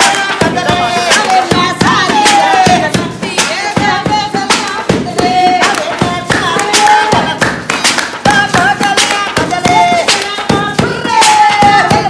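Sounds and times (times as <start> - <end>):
sharp hand claps: 4.4 - 12.0
person singing wavering melody: 9.3 - 12.0.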